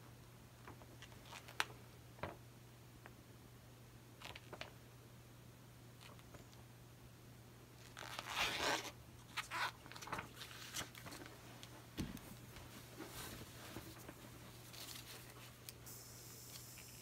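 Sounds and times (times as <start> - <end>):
faint steady hum: 0.0 - 17.0
plastic crinkling and rustling: 7.8 - 15.8.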